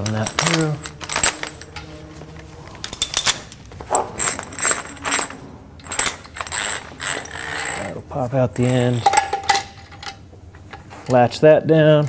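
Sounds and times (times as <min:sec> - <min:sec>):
metallic clinks and knocks: 0:00.0 - 0:11.2.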